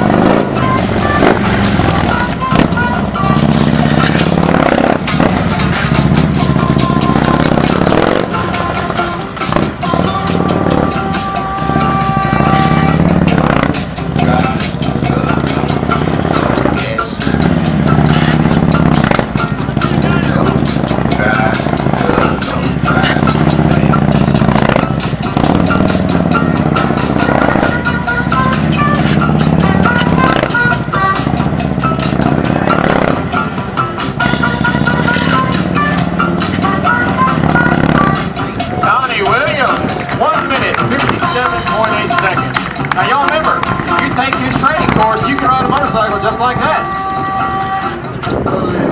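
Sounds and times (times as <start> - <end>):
background music: 0.0 - 48.9
motorcycle engine revving: 0.0 - 48.9.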